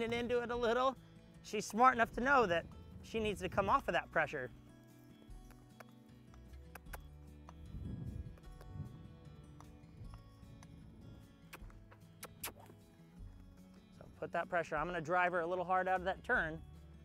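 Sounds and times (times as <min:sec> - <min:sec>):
soft music with held notes: 0:00.0 - 0:17.0
horse hoofbeats on sand: 0:05.2 - 0:13.8.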